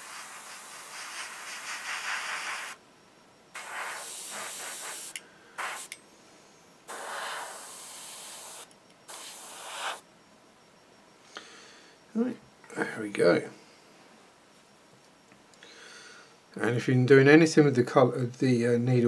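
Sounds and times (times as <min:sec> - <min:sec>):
airbrush spraying paint: 0:00.0 - 0:02.8, 0:03.5 - 0:06.0, 0:06.9 - 0:10.0.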